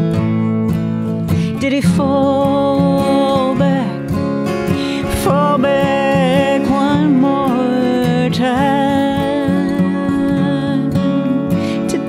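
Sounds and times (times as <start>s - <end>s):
acoustic guitar strumming: 0.0s - 12.0s
woman singing: 1.1s - 12.0s.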